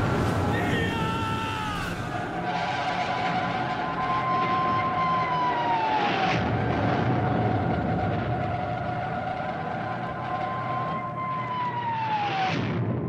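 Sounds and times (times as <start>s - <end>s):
low rumble: 0.0s - 5.4s.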